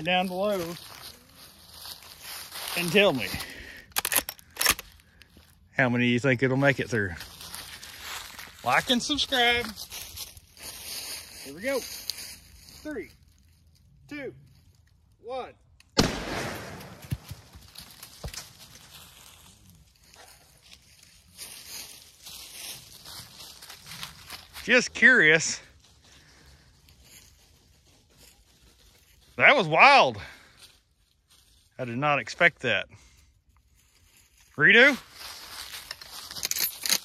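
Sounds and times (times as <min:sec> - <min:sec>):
rustling in leaves: 0:00.0 - 0:03.3, 0:07.0 - 0:13.8, 0:17.2 - 0:24.8, 0:33.7 - 0:36.7
sharp rifle clicks: 0:03.9 - 0:04.9
rifle shot echo: 0:16.0 - 0:17.3
rustling handling noise: 0:33.7 - 0:37.0.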